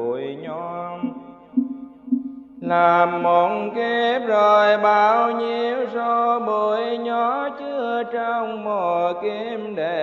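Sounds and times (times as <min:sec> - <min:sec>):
person chanting: 0:00.0 - 0:01.4, 0:02.6 - 0:10.0
short evenly spaced knocks: 0:01.0 - 0:02.7.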